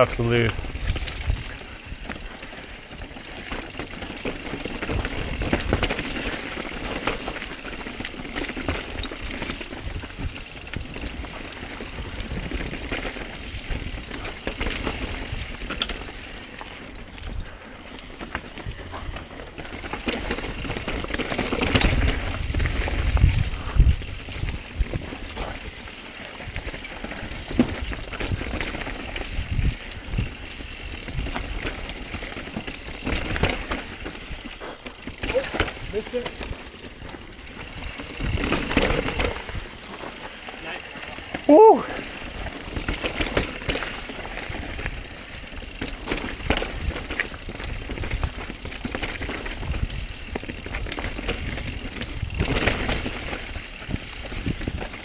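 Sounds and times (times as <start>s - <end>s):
bike rattling and knocking: 0.0s - 55.0s
tyre noise: 17.8s - 44.5s.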